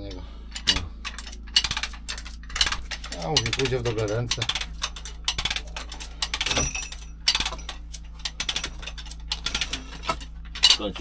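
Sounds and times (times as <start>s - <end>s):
steel chain clinking and rattling: 0.5s - 11.0s.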